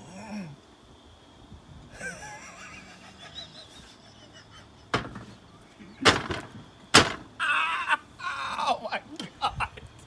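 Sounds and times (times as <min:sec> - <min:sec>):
stifled laughter and snickering: 0:01.9 - 0:04.9
sharp knock: 0:04.9 - 0:05.3, 0:06.0 - 0:07.3.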